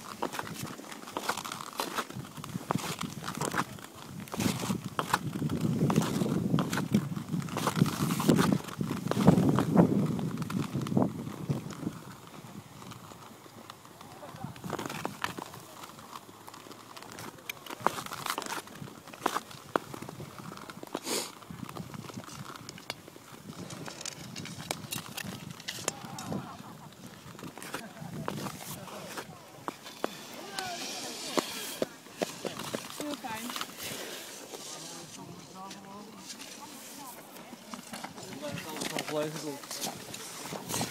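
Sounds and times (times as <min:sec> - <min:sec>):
ice skates scraping on ice: 0:00.0 - 0:40.9.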